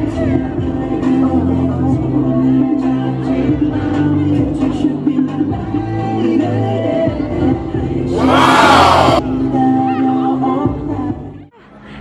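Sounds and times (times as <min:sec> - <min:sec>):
crowd screaming and cheering: 0:08.1 - 0:09.2
dance music: 0:08.1 - 0:09.2.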